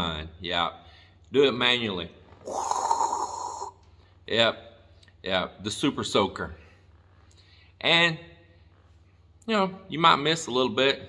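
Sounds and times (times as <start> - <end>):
man making spraying sound: 2.5 - 3.8.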